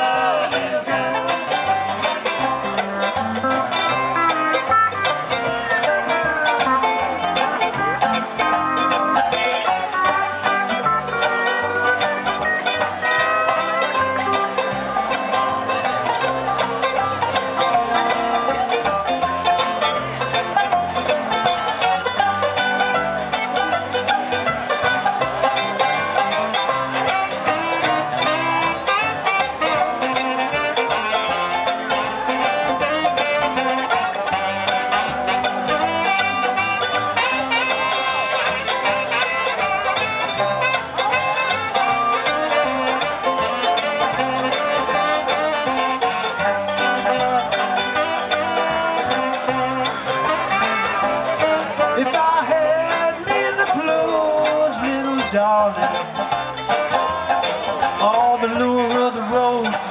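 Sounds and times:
acoustic bluegrass string band: 0.0 - 59.9
acoustic guitar: 0.0 - 59.9.

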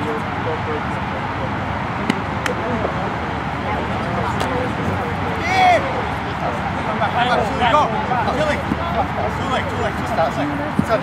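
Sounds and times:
distant players calling: 0.0 - 11.0.

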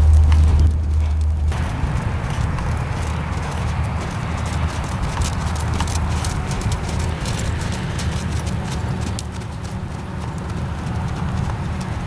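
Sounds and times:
horse hoofbeats on sand: 0.0 - 12.0
steady low rumble: 0.0 - 12.0.

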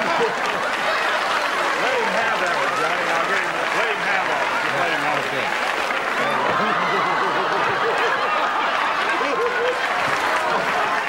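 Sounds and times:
audience clapping: 0.0 - 11.0
audience laughing: 0.0 - 11.0.

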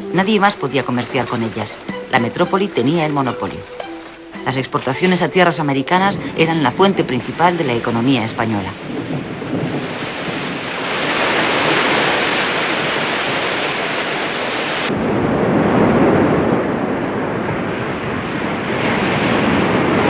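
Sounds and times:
sea waves rushing: 0.0 - 20.0
wind: 0.0 - 20.0.

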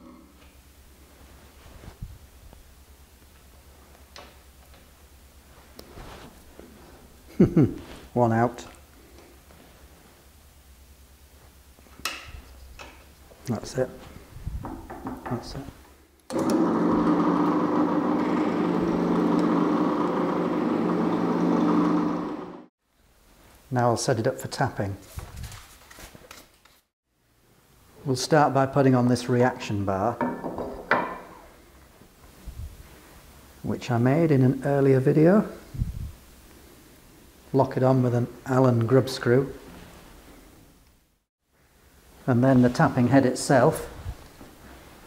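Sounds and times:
pillar drill humming: 16.3 - 22.7.

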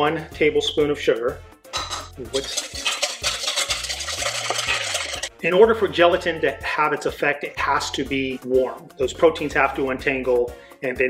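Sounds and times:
spatula scraping metal bowl: 1.9 - 5.4.

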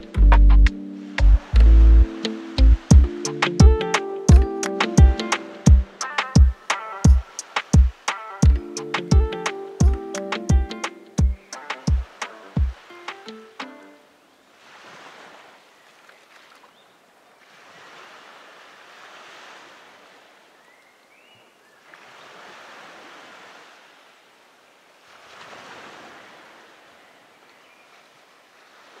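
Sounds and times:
sea waves washing in: 0.7 - 16.7, 17.3 - 20.6, 21.8 - 29.0.

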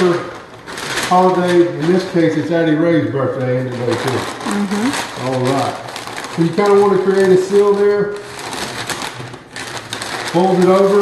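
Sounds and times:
paper crinkling and rustling: 0.0 - 2.6, 3.3 - 11.0.

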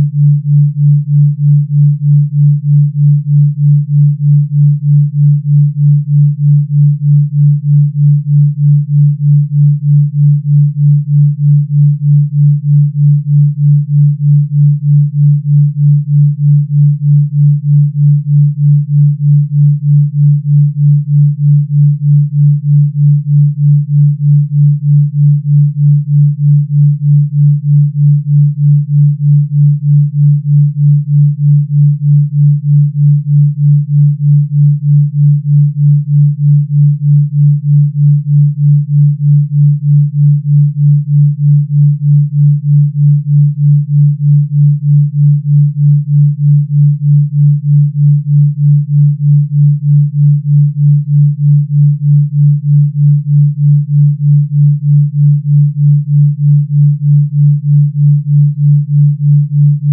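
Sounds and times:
pulsing low sine tone: 0.0 - 59.9.

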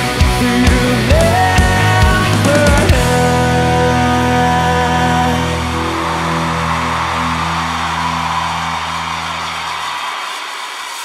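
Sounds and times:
low bass notes: 0.0 - 9.5
distorted rock chord ringing: 0.0 - 10.0.

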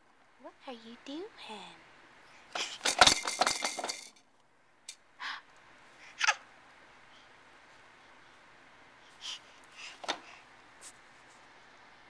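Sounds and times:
plastic toys rattling: 2.6 - 4.2.

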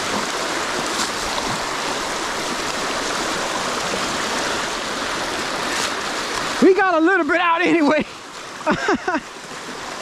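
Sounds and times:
water rushing: 0.0 - 10.0
man laughing: 8.6 - 9.3.

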